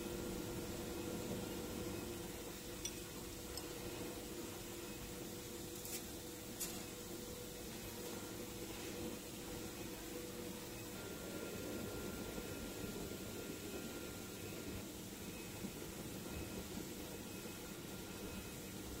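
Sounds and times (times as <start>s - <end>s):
factory machinery hum and hiss: 0.0s - 19.0s
faint steady whine: 0.0s - 19.0s.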